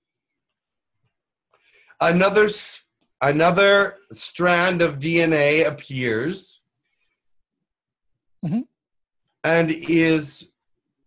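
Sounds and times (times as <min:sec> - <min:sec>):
man saying mm-hmm: 0:08.4 - 0:08.8.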